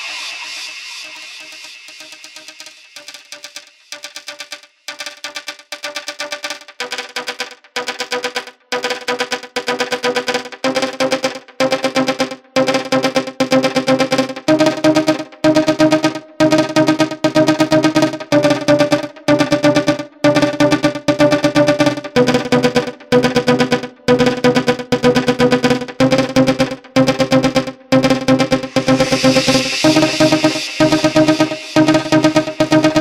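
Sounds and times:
techno synthesizer chord stabs: 5.8s - 33.0s.

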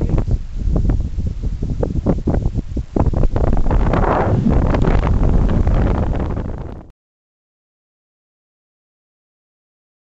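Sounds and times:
wind buffeting microphone: 0.0s - 6.9s.

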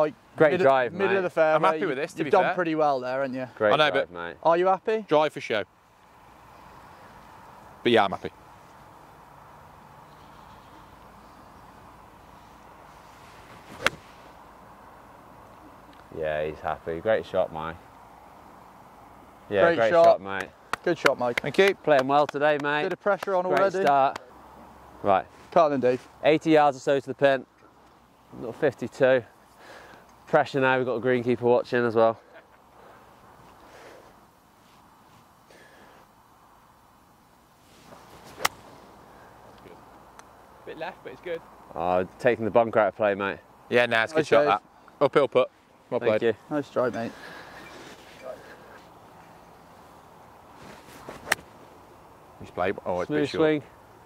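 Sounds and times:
low outdoor background: 0.0s - 54.0s
golf club striking ball: 13.8s - 14.0s, 38.4s - 38.6s, 51.2s - 51.5s.

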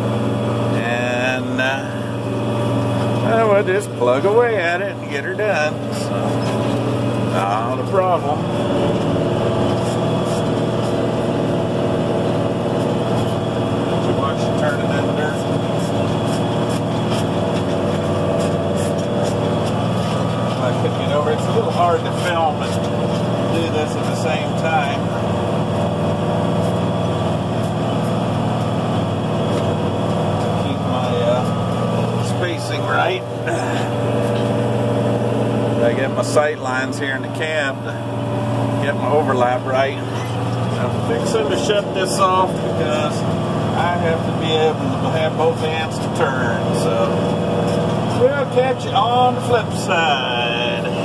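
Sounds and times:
tractor diesel engine under load: 0.0s - 51.0s.

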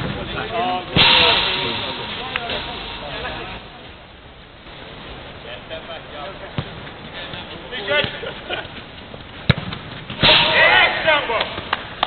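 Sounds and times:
football kick thuds: 9.4s - 10.4s
players shouting: 10.2s - 11.7s.

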